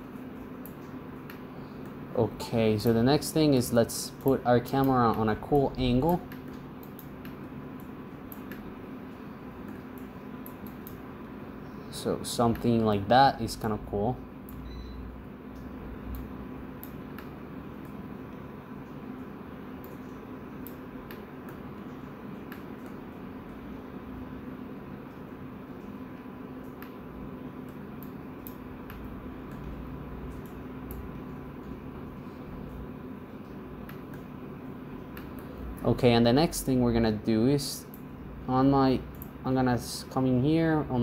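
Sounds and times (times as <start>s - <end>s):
computer hum and hiss: 0.0s - 41.0s.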